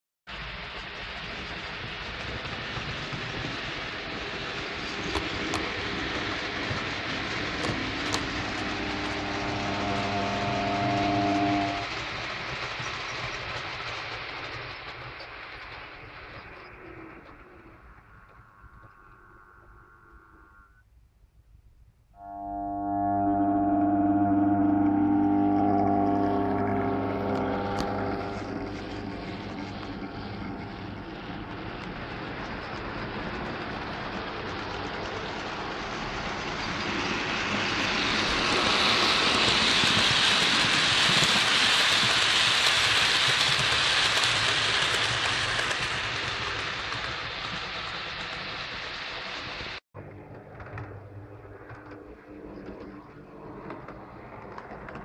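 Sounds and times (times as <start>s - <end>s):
model train rattling past: 0.3s - 20.8s, 22.2s - 55.0s
held pitched tone: 7.2s - 12.0s, 22.2s - 31.9s.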